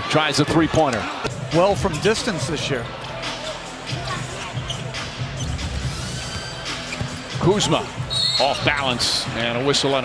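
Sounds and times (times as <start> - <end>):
background music: 1.2 - 10.0.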